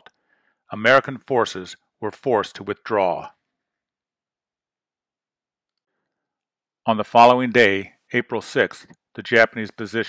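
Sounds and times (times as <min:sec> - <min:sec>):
man narrating: 0:00.7 - 0:03.4, 0:06.9 - 0:10.0.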